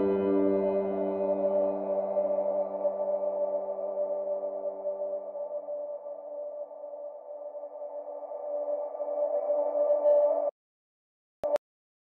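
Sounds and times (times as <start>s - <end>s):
sustained electronic synth chord: 0.0s - 5.0s.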